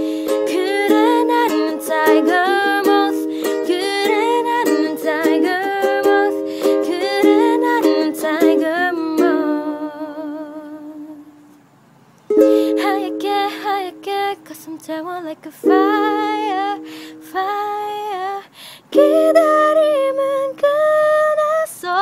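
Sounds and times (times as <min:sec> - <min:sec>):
person singing: 0:00.0 - 0:11.4, 0:12.3 - 0:22.0
ukulele strummed in chords: 0:00.0 - 0:11.4, 0:12.3 - 0:18.2, 0:19.0 - 0:20.6.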